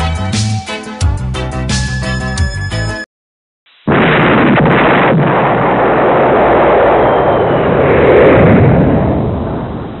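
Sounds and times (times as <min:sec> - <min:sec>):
explosion blast: 0:03.8 - 0:10.0.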